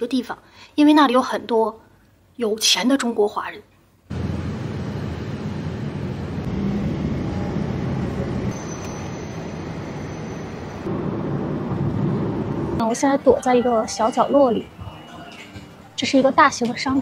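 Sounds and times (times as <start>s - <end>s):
faint high whine: 4.1s - 11.0s
car road and engine rumble: 4.1s - 12.8s.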